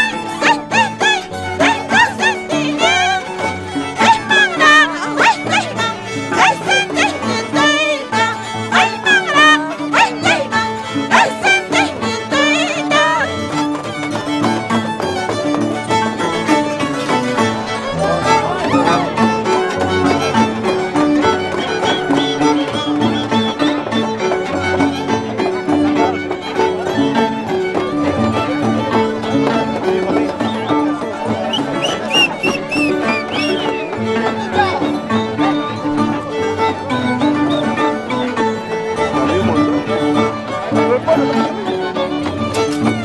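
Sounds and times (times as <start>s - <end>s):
violin ornamented melody: 0.0s - 43.0s.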